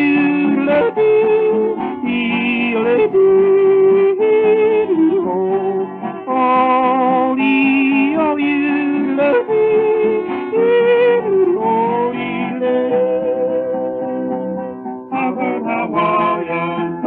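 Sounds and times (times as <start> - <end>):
guitar accompaniment: 0.0 - 17.0.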